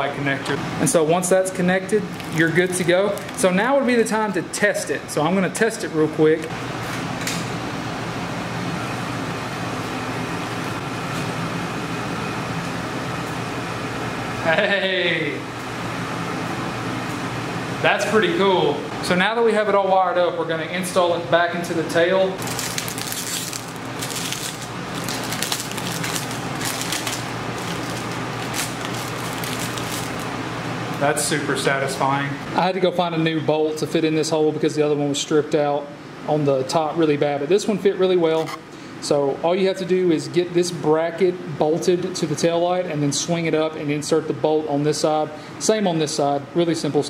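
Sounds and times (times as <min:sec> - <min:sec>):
steady mechanical hum: 0:00.0 - 0:47.0
plastic bag crinkling: 0:02.0 - 0:03.6, 0:22.4 - 0:30.4.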